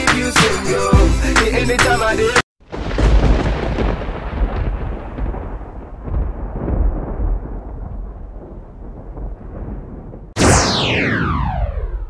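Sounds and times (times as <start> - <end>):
thunder-like rumbling boom: 2.6 - 12.0.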